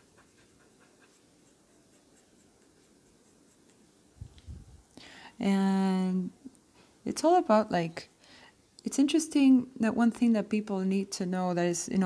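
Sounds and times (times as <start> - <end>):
eraser scratching on paper: 0.0 - 3.8.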